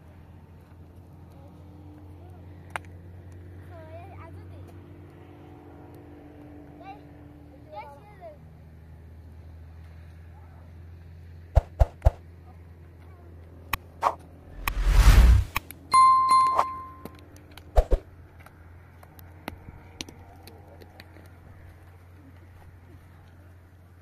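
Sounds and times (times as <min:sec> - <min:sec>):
loud whoosh: 0:14.0 - 0:15.6
notification ding: 0:15.9 - 0:17.2.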